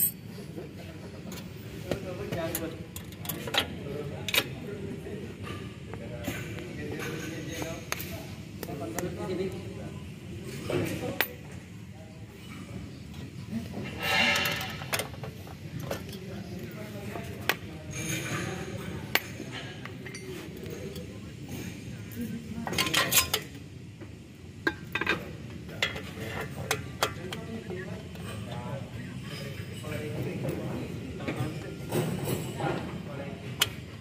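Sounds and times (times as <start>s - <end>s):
metal parts rattling: 0.0s - 0.2s
metal clinks and scrapes: 0.0s - 0.3s, 13.8s - 16.2s.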